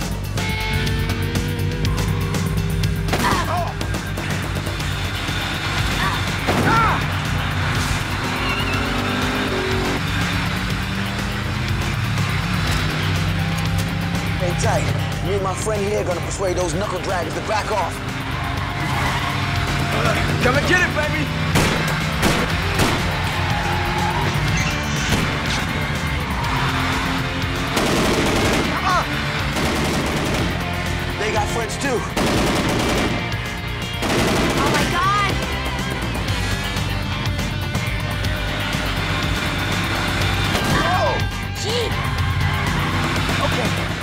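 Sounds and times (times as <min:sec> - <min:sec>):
action music with low notes: 0:00.0 - 0:44.0
car engines: 0:00.0 - 0:44.0
tyre squeals: 0:08.3 - 0:09.6
automatic gunfire bursts: 0:27.7 - 0:30.6, 0:32.2 - 0:33.4, 0:34.0 - 0:35.2.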